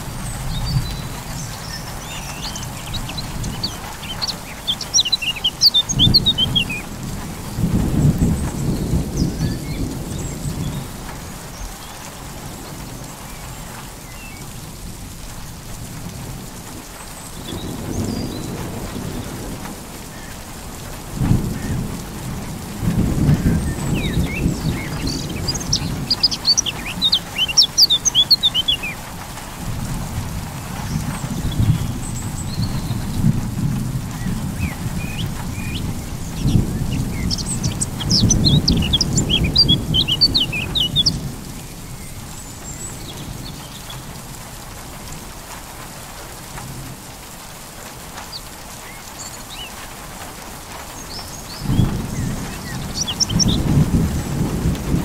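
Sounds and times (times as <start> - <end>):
birds chirping: 0.0 - 12.1, 23.1 - 29.7, 30.6 - 33.4, 34.1 - 44.1, 48.2 - 50.0, 50.8 - 55.0
thunder rumbling: 0.0 - 14.1, 14.8 - 48.2, 51.2 - 55.0
steady rain: 0.0 - 55.0.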